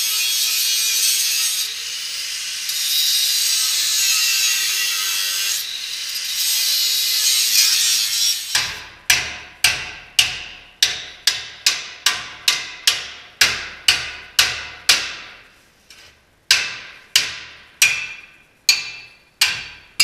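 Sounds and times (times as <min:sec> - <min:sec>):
angle grinder cutting steel: 0:00.0 - 0:08.8
hammer striking steel: 0:08.4 - 0:15.5, 0:16.5 - 0:20.0.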